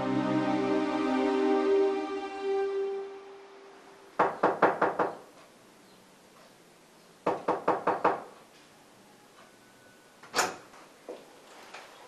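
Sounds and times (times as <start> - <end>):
knocking on a door: 4.2 - 5.2, 7.2 - 8.3.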